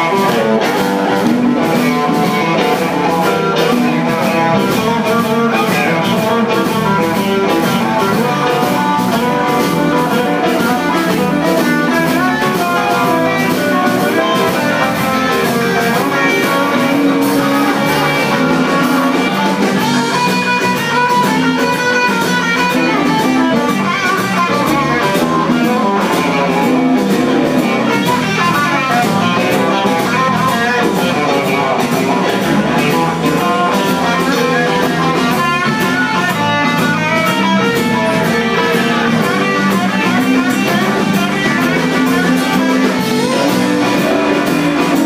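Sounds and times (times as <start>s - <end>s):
electric guitars: 0.0s - 45.0s
live blues band playing: 0.0s - 45.0s.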